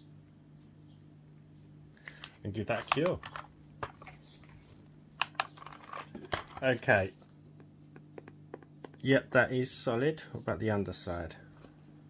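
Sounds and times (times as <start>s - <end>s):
faint steady hum: 0.0s - 12.0s
plastic clicks: 2.2s - 4.2s, 5.2s - 6.6s.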